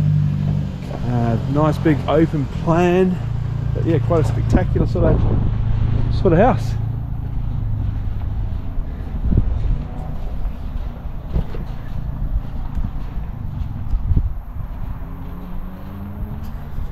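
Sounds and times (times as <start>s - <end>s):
wind buffeting microphone: 0.4s - 16.9s
footsteps on concrete: 7.2s - 16.9s.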